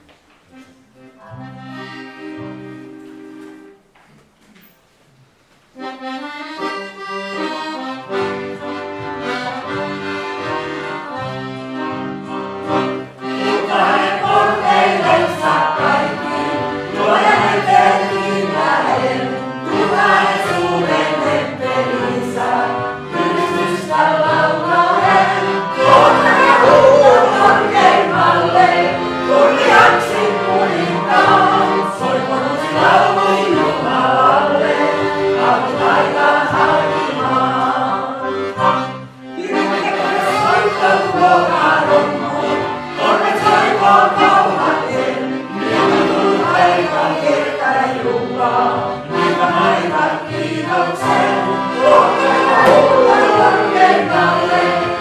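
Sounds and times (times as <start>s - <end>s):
congregation singing a hymn: 9.2s - 55.0s
instrument playing held chords: 24.4s - 33.2s, 50.4s - 55.0s.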